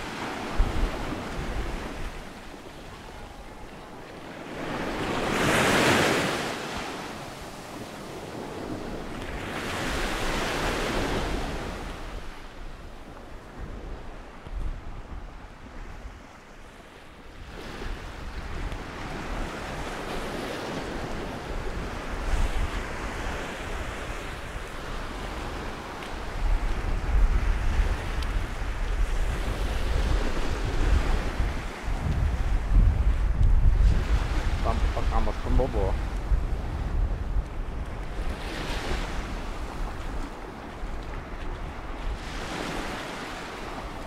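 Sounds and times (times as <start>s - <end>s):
small waves breaking on shore: 0.0s - 44.0s
wind buffeting microphone: 0.0s - 44.0s.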